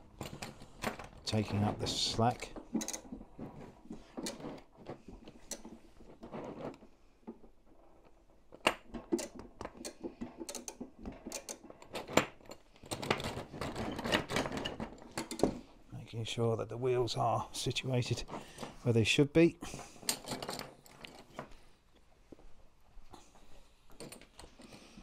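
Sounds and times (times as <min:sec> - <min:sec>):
metal track links clicking: 0:02.6 - 0:03.2, 0:09.1 - 0:15.6.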